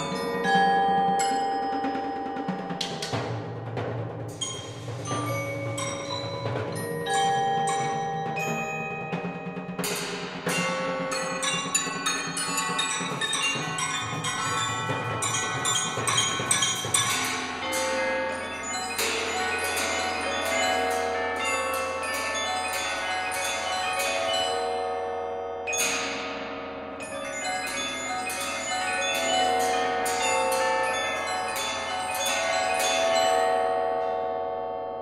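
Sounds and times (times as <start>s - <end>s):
bell-like metal tones: 0.0s - 35.0s
metal mallet percussion: 0.0s - 35.0s.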